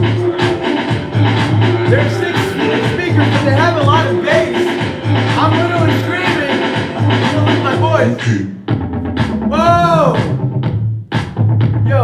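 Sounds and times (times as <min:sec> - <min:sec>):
bass-heavy music with drum beat: 0:00.0 - 0:12.0.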